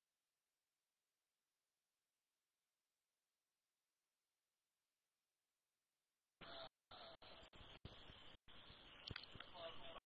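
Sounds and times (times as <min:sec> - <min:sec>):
faint steady hiss: 0:06.4 - 0:10.0.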